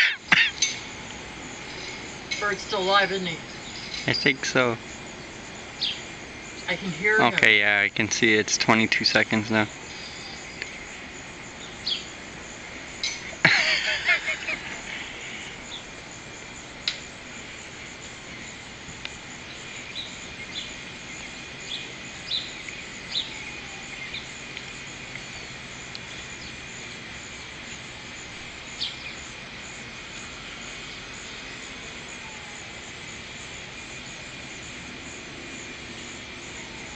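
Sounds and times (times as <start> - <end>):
insects droning: 0.0 - 36.9.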